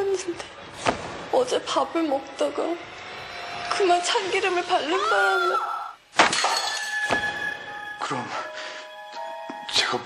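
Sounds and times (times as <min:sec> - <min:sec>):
dish crashing on floor: 0:06.2 - 0:07.4.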